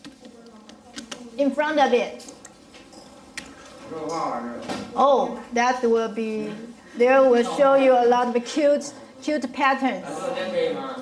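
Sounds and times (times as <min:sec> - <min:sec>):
person speaking: 0:00.0 - 0:02.5.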